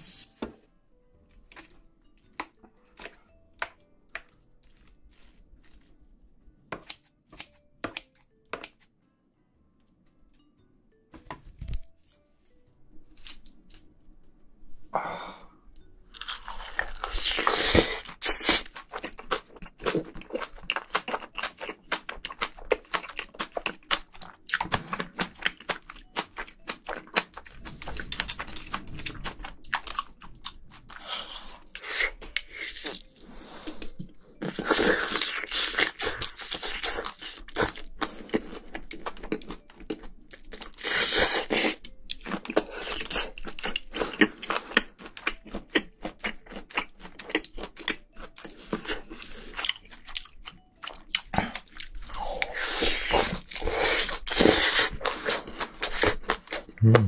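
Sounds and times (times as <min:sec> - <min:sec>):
chewing and crunching food: 0:01.2 - 0:08.9, 0:16.1 - 0:57.0.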